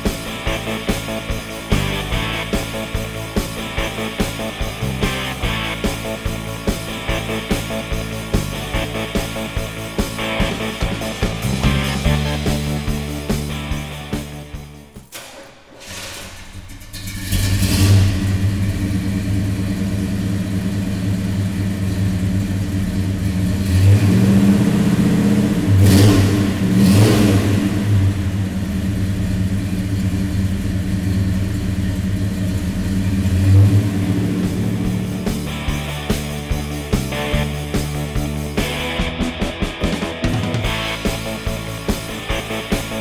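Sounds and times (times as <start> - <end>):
car engine starting and idling: 0.0 - 43.0
engine revving: 0.0 - 43.0.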